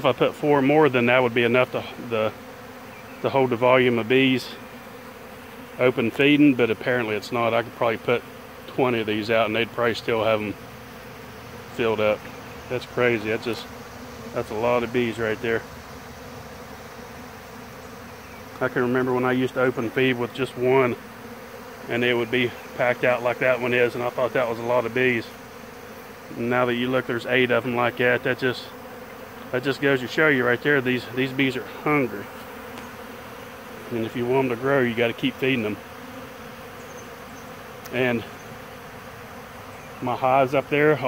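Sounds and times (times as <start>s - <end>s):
bees humming: 0.0s - 41.0s.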